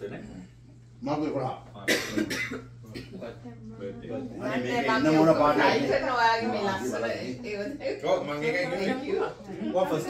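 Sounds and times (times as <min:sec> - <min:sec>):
person coughing: 0:01.8 - 0:03.2.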